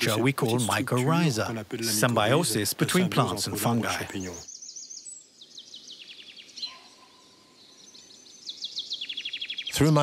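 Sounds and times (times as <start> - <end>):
songbirds chirping: 0.0 - 10.0.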